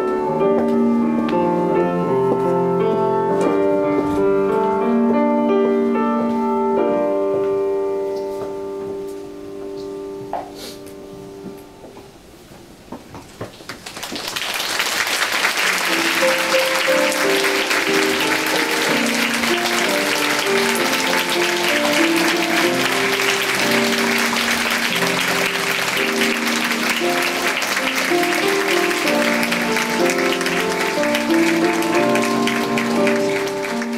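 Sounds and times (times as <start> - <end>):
grand piano gentle melody: 0.0 - 12.9, 15.2 - 33.9
audience applause: 13.5 - 33.9.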